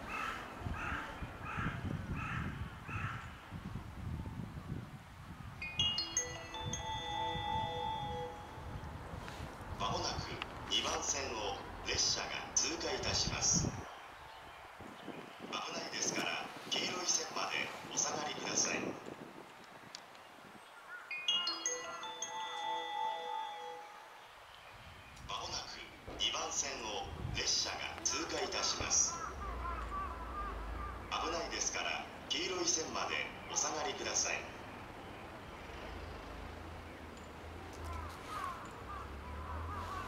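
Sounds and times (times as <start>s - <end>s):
bell-like pa chime: 5.6s - 9.0s, 21.1s - 24.3s.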